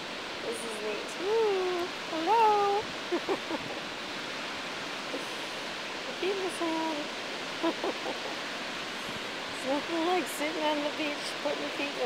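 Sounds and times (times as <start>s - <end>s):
ocean surf washing on beach: 0.0s - 12.0s.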